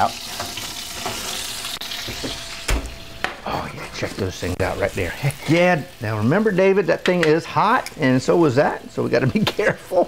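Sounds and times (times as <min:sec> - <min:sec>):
food sizzling: 0:00.0 - 0:10.0.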